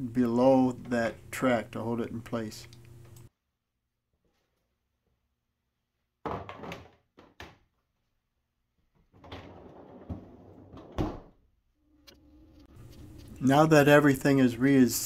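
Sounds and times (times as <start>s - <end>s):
drawer rolling on rails: 9.2s - 11.0s.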